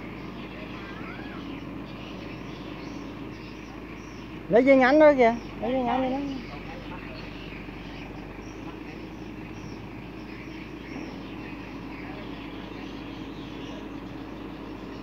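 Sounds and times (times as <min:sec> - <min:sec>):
faint voices: 0:00.0 - 0:15.0
truck engine running: 0:00.0 - 0:15.0.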